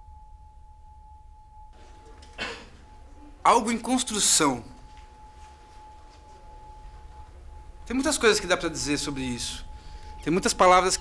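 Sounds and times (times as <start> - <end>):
faint steady pure tone: 0.0 - 11.0.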